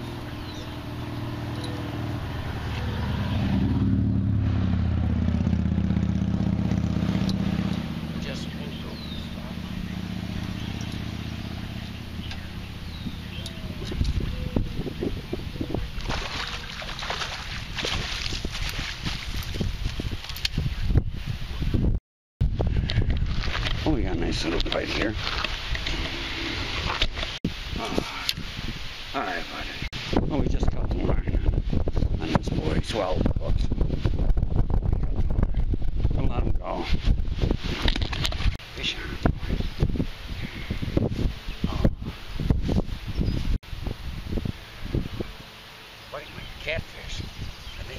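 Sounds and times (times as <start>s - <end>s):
low engine hum: 0.0s - 19.0s
wind buffeting microphone: 0.0s - 45.5s, 46.2s - 47.9s
water splashing and knocking: 16.0s - 19.6s.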